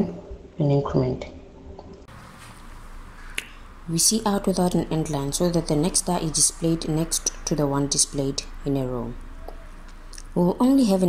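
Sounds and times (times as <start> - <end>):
faint steady hiss: 1.9 - 11.0.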